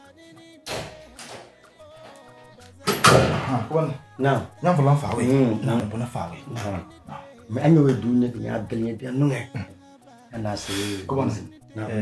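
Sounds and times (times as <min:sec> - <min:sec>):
faint background music: 0:00.0 - 0:12.0
man talking animatedly: 0:03.4 - 0:09.6, 0:10.3 - 0:12.0.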